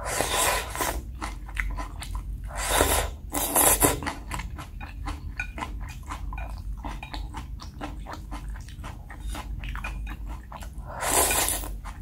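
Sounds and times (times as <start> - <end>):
chewing with crunchy bites: 0.2 - 12.0.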